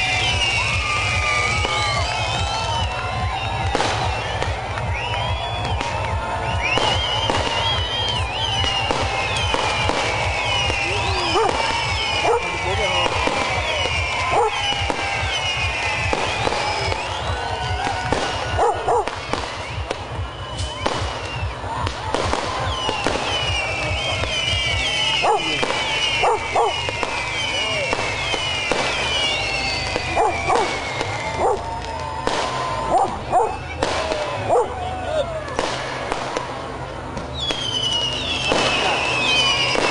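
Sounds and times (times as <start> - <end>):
fireworks falling whistles: 0.0 - 34.5, 35.4 - 39.9
crowd shouting and cheering: 0.0 - 39.9
fireworks bangs and crackling: 0.0 - 39.9.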